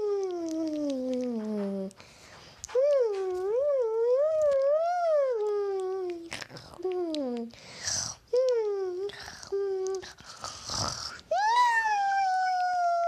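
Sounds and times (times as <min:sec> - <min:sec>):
person wailing wordlessly: 0:02.8 - 0:07.4, 0:11.3 - 0:13.0.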